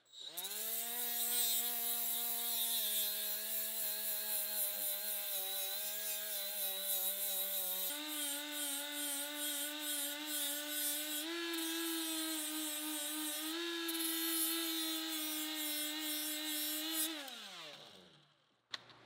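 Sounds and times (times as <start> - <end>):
grinder motor whine: 0.1 - 18.3.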